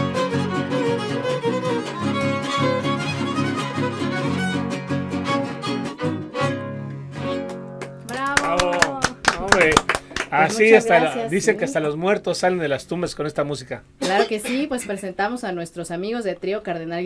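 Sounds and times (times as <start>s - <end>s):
string trio playing folk music: 0.0s - 13.0s
people clapping: 7.3s - 11.2s
voices cheering: 8.1s - 9.7s.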